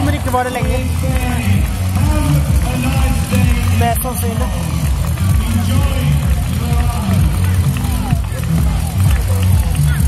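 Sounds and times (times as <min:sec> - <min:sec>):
crowd voices: 0:00.0 - 0:10.0
loud music with strong bass: 0:00.0 - 0:10.0.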